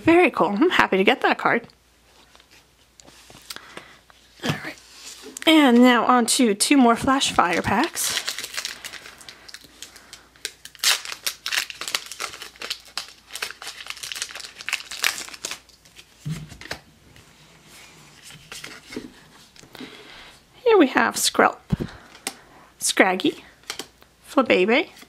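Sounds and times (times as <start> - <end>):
foil wrapper crinkling and tearing: 7.4 - 16.8.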